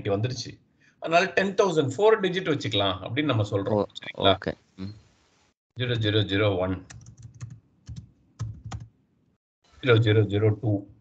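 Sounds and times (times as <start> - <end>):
person speaking: 1.3 - 5.0, 5.8 - 7.0.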